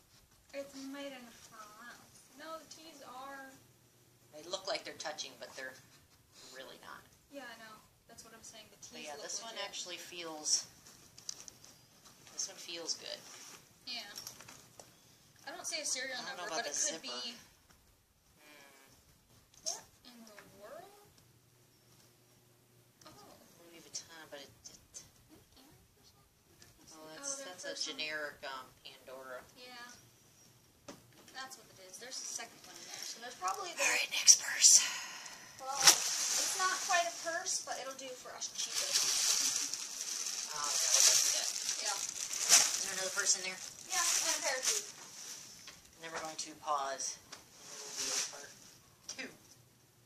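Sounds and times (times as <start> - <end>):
rustling and handling noise: 0.0 - 3.2, 8.8 - 18.4, 29.6 - 34.0, 34.9 - 49.8.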